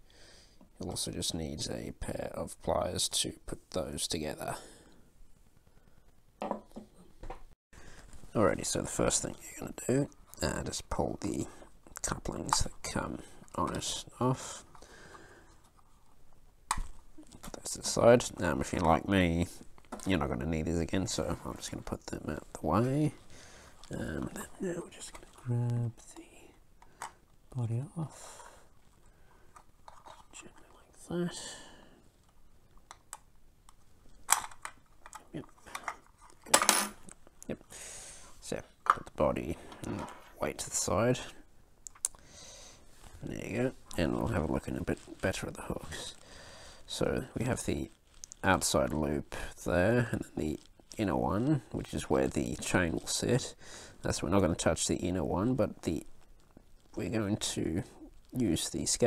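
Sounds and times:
pliers knocking on wooden table: 6.4 - 7.4.

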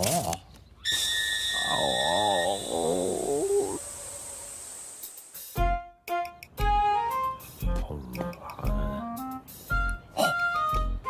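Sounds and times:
rising cry: 0.9 - 4.5
high warbling tone: 0.9 - 4.6.

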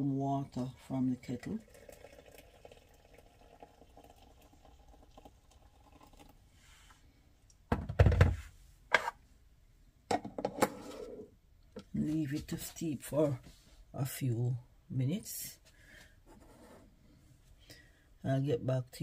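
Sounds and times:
water pouring into teapot: 1.3 - 6.4.

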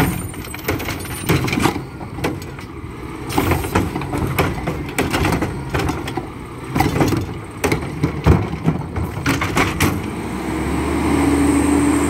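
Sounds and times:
metal clanks: 0.0 - 10.1
truck arm hoisting trash cart: 0.0 - 10.7
diesel engine rumble: 0.0 - 12.0.

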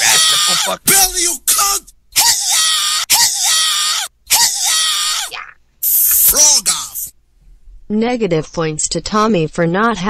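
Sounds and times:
person crying out: 0.0 - 7.1.

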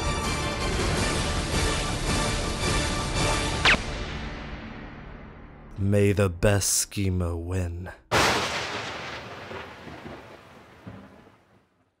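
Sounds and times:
speech: 5.8 - 8.1
loud boom hit: 8.1 - 11.1.

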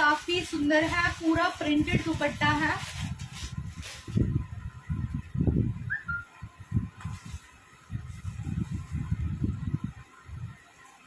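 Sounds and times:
cloth being handled and brushed: 0.0 - 4.4, 7.0 - 9.2.

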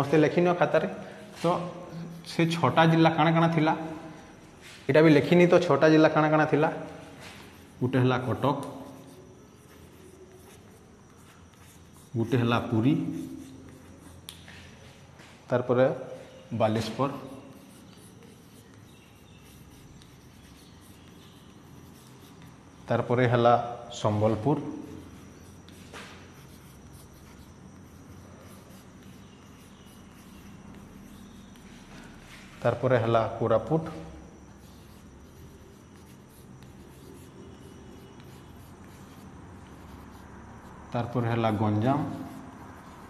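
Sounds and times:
low steady room hum: 0.0 - 43.0
chalk scratching on blackboard: 1.2 - 5.7, 6.4 - 15.3, 16.0 - 23.4, 24.0 - 43.0.

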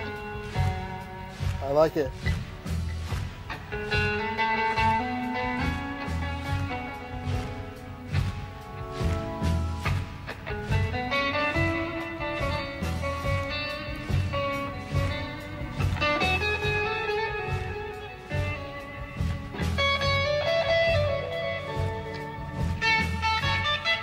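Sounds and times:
bass: 0.0 - 24.0
drums: 0.0 - 24.0
electric guitar lead notes: 0.0 - 24.0.

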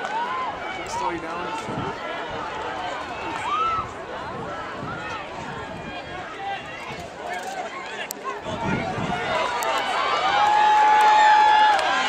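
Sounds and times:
spectators shouting and cheering: 0.0 - 12.0.

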